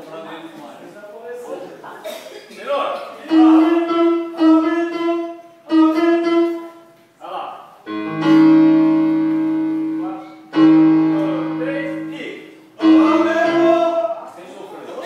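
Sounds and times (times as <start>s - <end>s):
electronic keyboard piano notes: 3.2s - 6.9s, 7.9s - 14.3s.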